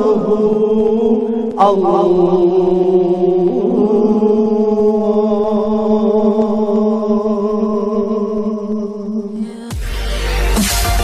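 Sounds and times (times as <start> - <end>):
voices chanting a long note: 0.0 - 10.5.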